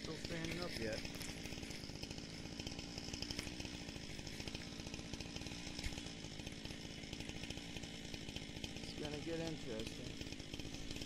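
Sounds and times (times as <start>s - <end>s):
chainsaw running: 0.0s - 11.0s.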